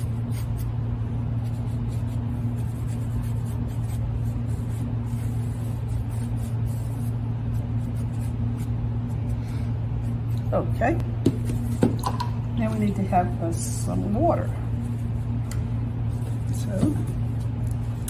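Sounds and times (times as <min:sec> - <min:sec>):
steady low hum: 0:00.0 - 0:18.0
paintbrush scratching on canvas: 0:01.4 - 0:08.8.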